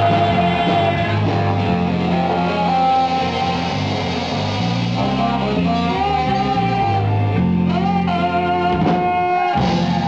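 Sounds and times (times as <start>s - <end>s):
horn holding long note: 0.0s - 10.0s
live blues band: 0.0s - 10.0s.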